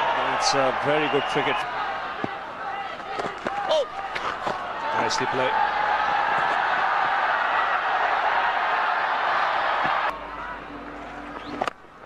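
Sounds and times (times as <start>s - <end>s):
stadium crowd cheering: 0.0s - 11.7s.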